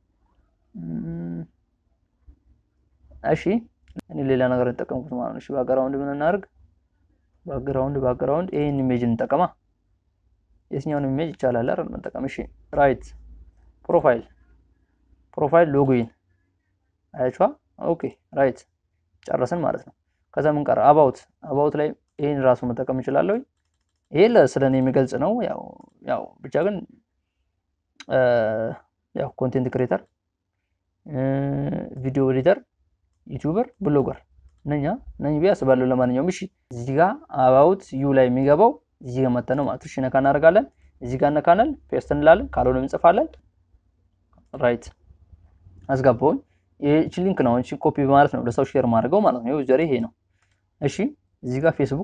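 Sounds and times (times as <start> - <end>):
man saying ehh: 0.8 - 1.5
man speaking: 0.8 - 1.5, 3.2 - 6.5, 7.5 - 9.5, 10.7 - 13.2, 13.9 - 14.3, 15.4 - 16.1, 17.2 - 18.6, 19.2 - 23.4, 24.1 - 26.9, 28.0 - 30.0, 31.1 - 32.6, 33.3 - 43.4, 44.5 - 44.9, 45.9 - 50.1, 50.8 - 52.0.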